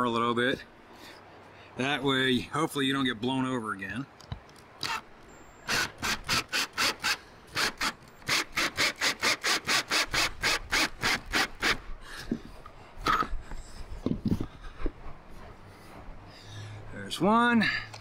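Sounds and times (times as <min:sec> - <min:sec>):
cordless drill driving a screw: 0:05.6 - 0:11.8.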